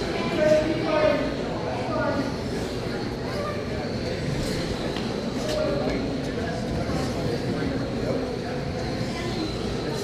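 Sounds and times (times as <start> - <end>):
voices of people: 0.0 - 10.0.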